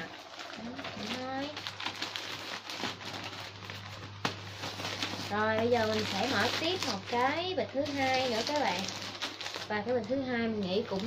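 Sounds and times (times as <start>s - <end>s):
low steady hum: 0.0s - 11.0s
plastic bag rustling and crinkling: 0.0s - 11.0s.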